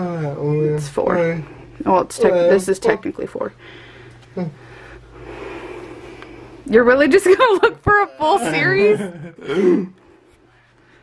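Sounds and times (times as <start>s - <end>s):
man clearing throat: 9.2s - 10.0s.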